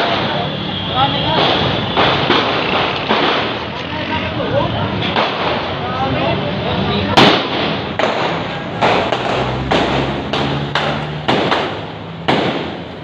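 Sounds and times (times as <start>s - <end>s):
street noise: 0.0s - 13.0s
gunshots: 1.3s - 3.7s, 7.2s - 13.0s.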